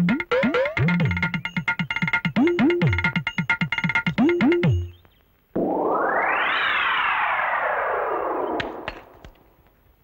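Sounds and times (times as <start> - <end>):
falling synthesized glide: 5.6 - 8.9.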